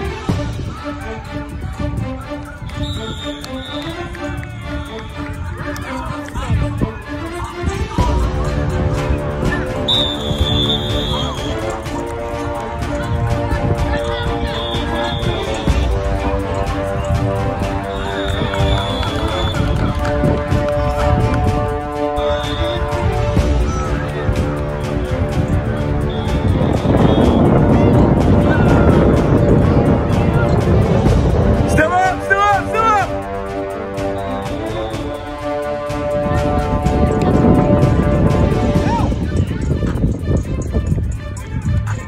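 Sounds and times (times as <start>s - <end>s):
crowd voices: 0.0s - 42.0s
music: 0.0s - 42.0s
referee's whistle blast: 2.8s - 5.2s, 9.6s - 11.7s, 14.4s - 15.8s, 17.9s - 19.8s, 22.2s - 22.9s
wind buffeting microphone: 23.0s - 31.7s, 36.2s - 42.0s.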